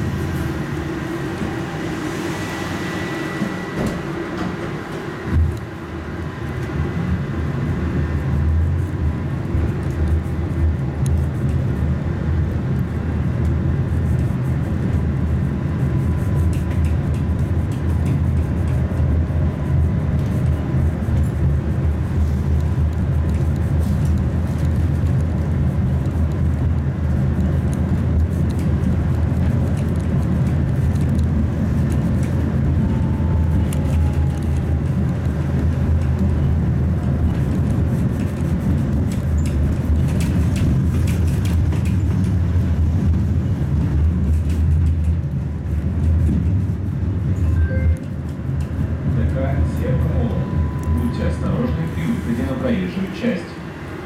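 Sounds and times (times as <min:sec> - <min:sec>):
tram rumbling on rails: 0:00.0 - 0:54.0.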